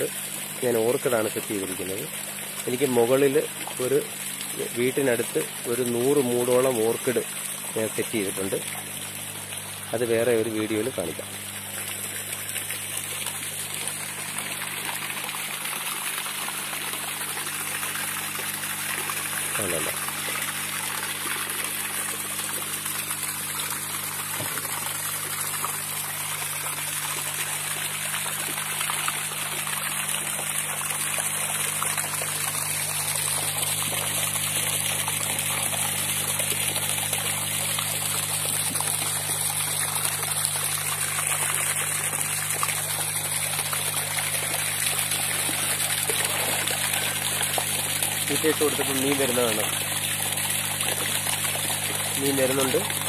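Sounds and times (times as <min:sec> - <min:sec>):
water pouring and splashing: 0:00.0 - 0:53.0.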